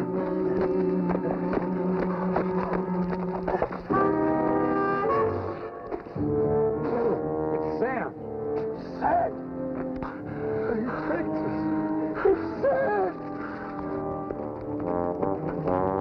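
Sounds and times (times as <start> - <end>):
orchestral brass chords: 3.9 - 9.8.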